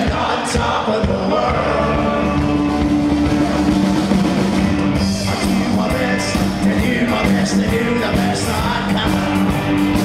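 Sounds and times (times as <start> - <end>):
live rock band with guitar: 0.0 - 10.0.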